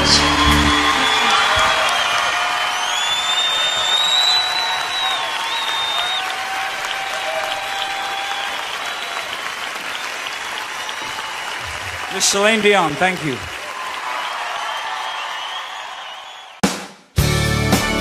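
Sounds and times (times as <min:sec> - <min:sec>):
whistles from audience: 0:00.0 - 0:12.1, 0:14.1 - 0:16.6
audience applauding: 0:00.0 - 0:16.6.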